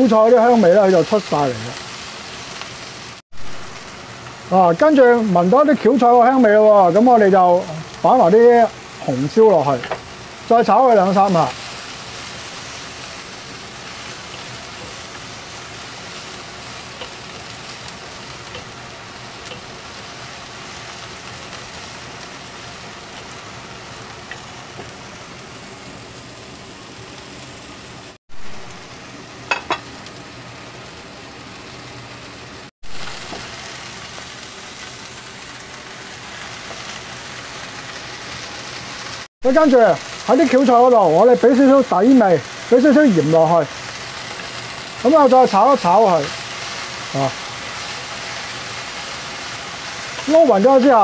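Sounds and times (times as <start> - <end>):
vegetables sizzling in a wok: 0.0 - 51.0.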